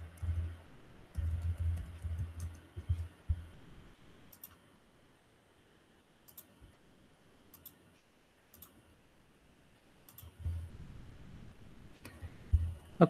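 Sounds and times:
computer mouse clicks: 1.1 - 3.1, 4.3 - 4.6, 6.2 - 6.8, 7.5 - 7.8, 8.5 - 8.8, 10.1 - 10.4.

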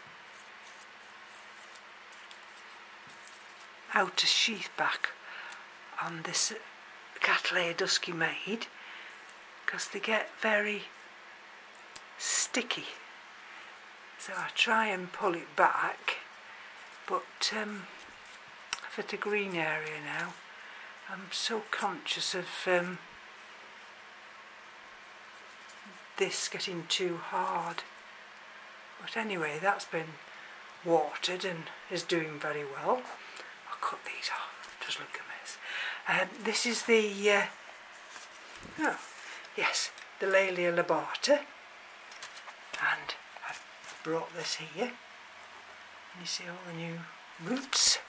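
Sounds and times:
dry plant sheath crackling: 0.0 - 28.5, 32.0 - 48.0
steady low hiss: 0.0 - 48.0.

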